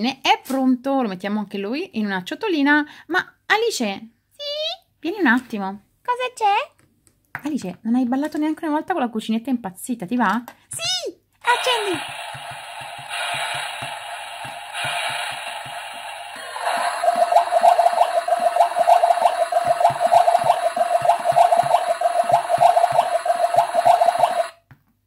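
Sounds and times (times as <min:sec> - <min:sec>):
toy electronic tune: 0:11.5 - 0:15.6, 0:16.3 - 0:24.6
hiss over steady beat: 0:11.5 - 0:24.4.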